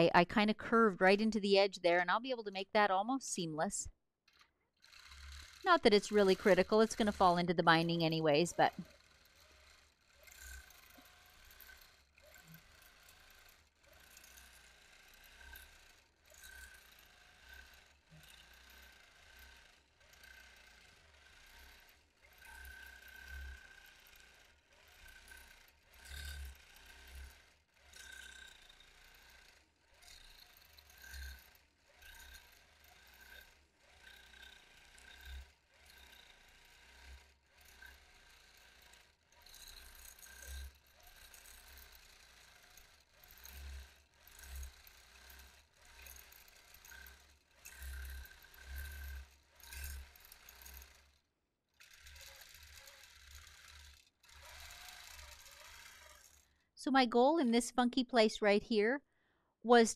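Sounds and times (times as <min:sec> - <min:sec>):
quilting machine stitching: 0:04.3 - 0:56.6.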